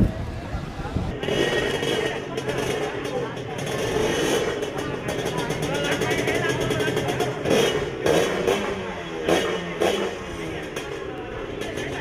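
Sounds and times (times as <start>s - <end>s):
motorcycle engine revving: 0.6s - 12.0s.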